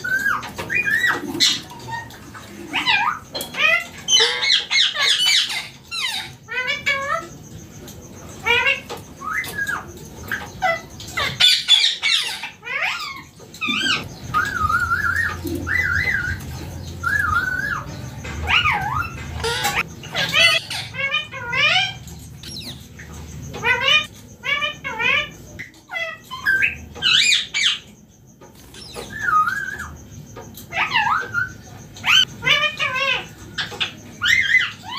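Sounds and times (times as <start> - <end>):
parakeet chirping and squawking: 0.0 - 34.9.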